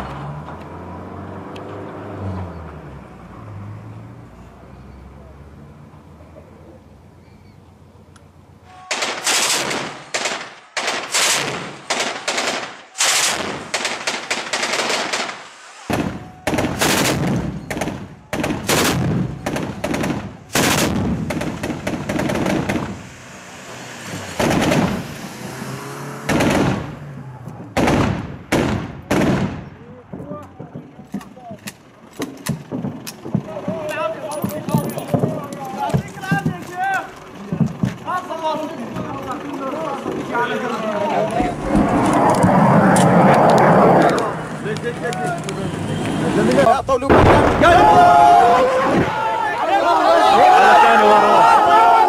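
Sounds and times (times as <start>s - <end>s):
machine gun firing bursts: 8.9s - 15.4s.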